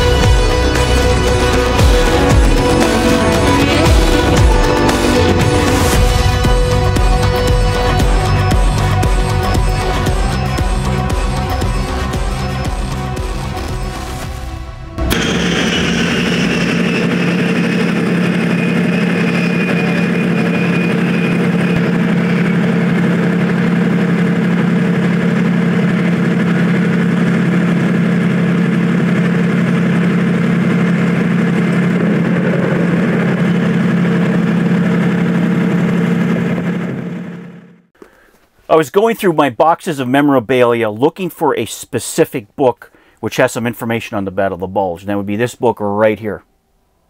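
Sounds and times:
high whine falling in pitch: 0.0 - 7.6, 15.0 - 37.9
vehicle engine running: 0.0 - 38.0.

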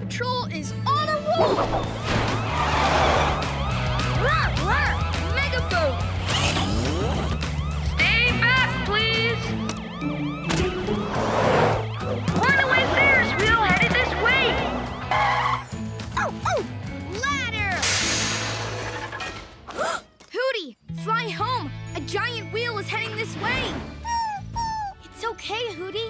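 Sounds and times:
cartoon police siren: 1.4 - 16.3.

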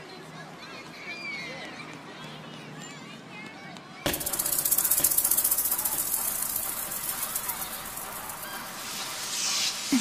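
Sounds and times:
sampled voices: 4.1 - 10.0
pulsing hissing noise: 4.2 - 10.0.

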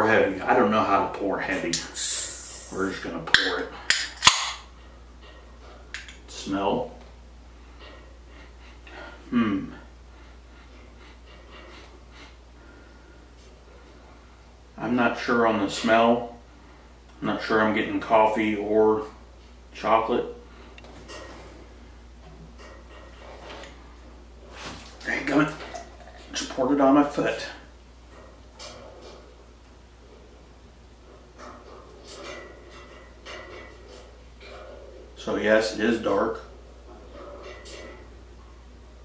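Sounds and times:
low steady hum: 0.0 - 39.0
man sniffing: 1.9 - 2.9.

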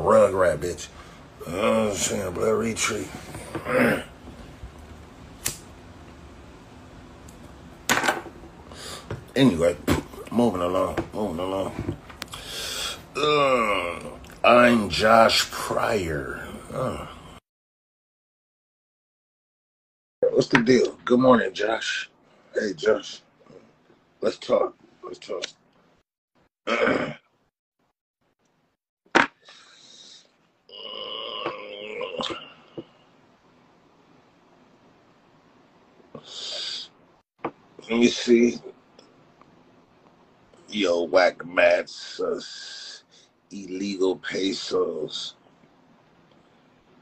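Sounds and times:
low room hum: 0.0 - 17.4, 20.2 - 26.0, 29.4 - 47.0
man grunting: 1.4 - 2.2, 3.4 - 4.1, 10.4 - 11.9, 13.2 - 14.2, 16.3 - 17.3, 30.7 - 32.6.

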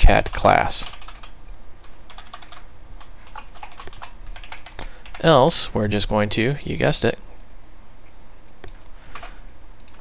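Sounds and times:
faint low hum: 0.0 - 10.0
computer keyboard typing: 0.1 - 5.3, 8.6 - 10.0.

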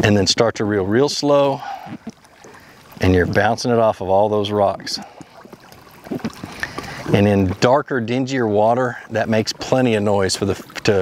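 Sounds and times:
water lapping: 0.0 - 11.0.

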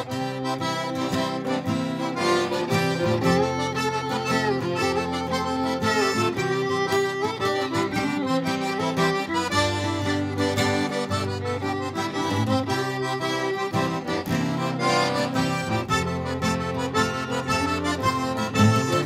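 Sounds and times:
accordion playing waltz melody: 0.0 - 19.0
acoustic guitar strumming: 0.0 - 19.0.

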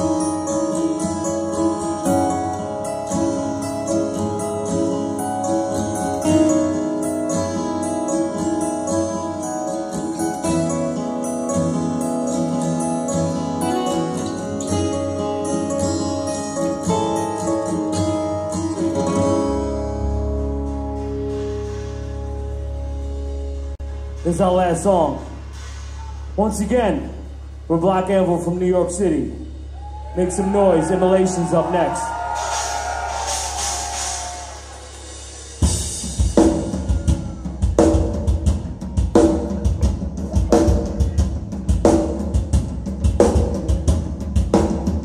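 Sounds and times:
plucked guitar melody: 0.0 - 24.2
cymbals: 32.0 - 43.9
metal drum kit playing: 32.2 - 45.0.

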